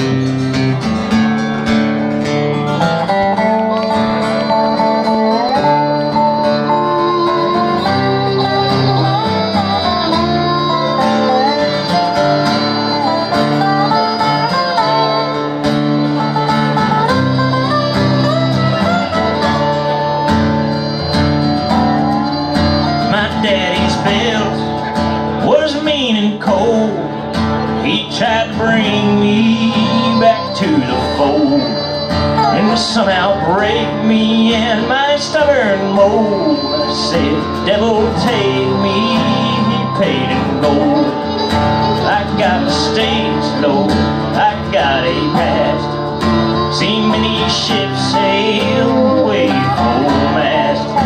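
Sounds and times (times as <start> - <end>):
fiddle: 0.0 - 51.0
lap steel guitar sliding notes: 0.0 - 51.0
strummed acoustic guitar: 0.0 - 51.0.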